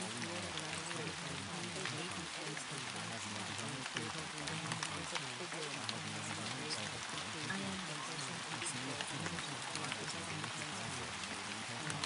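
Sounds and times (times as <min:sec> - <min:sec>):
low overlapping voices: 0:00.0 - 0:12.0
steady rain: 0:00.0 - 0:12.0.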